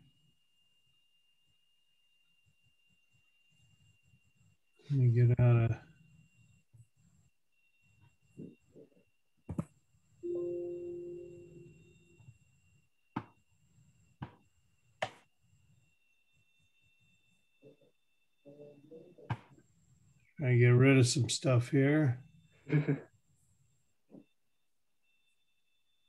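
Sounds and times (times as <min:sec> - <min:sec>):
short low tone: 0:10.2 - 0:11.8.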